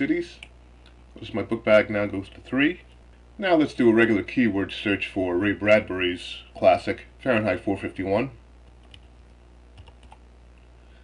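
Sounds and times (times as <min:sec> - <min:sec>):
low steady hum: 0:00.0 - 0:11.0
keyboard typing: 0:08.8 - 0:09.1, 0:09.8 - 0:10.2.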